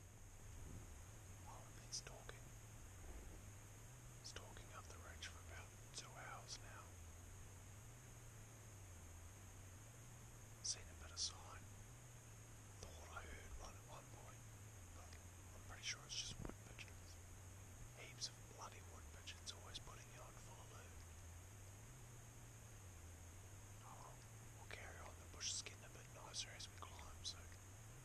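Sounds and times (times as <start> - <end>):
man whispering: 1.4 - 2.5, 4.2 - 7.0, 10.6 - 11.7, 12.8 - 17.2, 18.0 - 21.0, 23.8 - 27.6.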